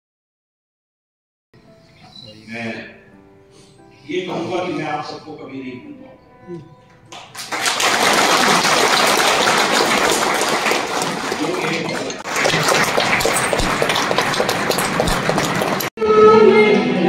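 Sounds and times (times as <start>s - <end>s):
audience applauding: 7.1s - 15.9s.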